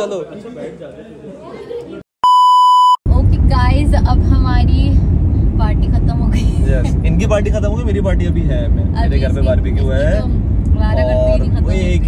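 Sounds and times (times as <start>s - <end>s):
censor bleep tone: 2.2s - 3.0s.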